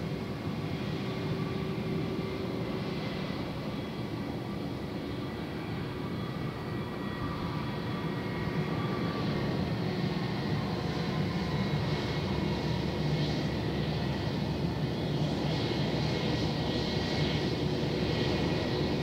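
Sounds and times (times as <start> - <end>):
jet engines rumbling: 0.0 - 19.0.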